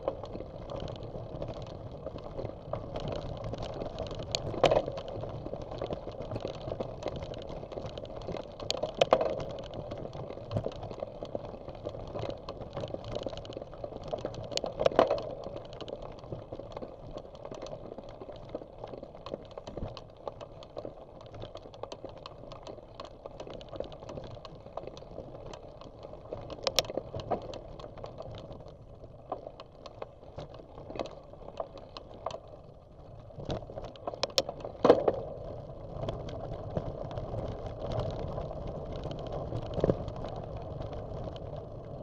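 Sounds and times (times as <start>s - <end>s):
bicycle tyres crunching on gravel: 0.0s - 42.0s
bike rattling: 0.0s - 42.0s.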